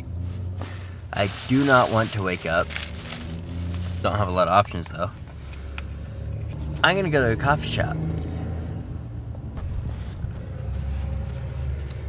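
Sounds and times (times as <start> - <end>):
engine idling rumble: 0.0 - 12.0.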